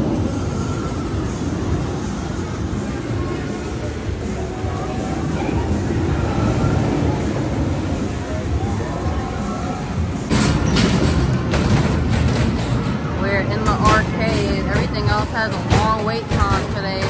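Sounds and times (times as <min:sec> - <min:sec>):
crowd chatter: 0:00.0 - 0:17.0
roller coaster rumbling on track: 0:00.0 - 0:17.0.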